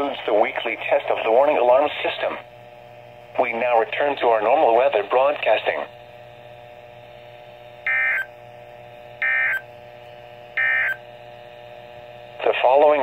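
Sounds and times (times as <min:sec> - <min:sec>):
digital data bursts: 0:07.9 - 0:08.3, 0:09.2 - 0:09.6, 0:10.6 - 0:11.0.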